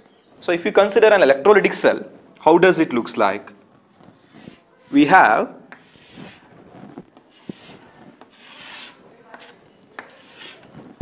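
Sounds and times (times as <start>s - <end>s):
chalk scraping on chalkboard: 4.1s - 10.8s
chalk tapping on board: 5.7s - 6.4s, 7.3s - 10.6s.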